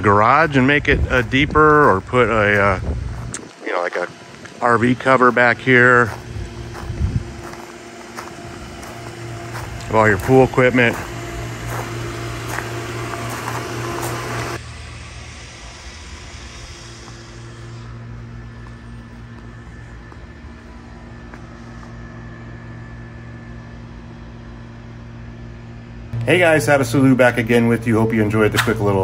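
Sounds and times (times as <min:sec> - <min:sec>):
pool pump motor humming: 0:00.0 - 0:29.0.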